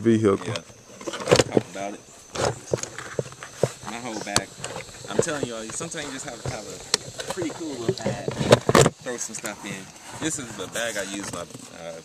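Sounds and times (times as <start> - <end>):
footsteps: 0.4 - 11.6.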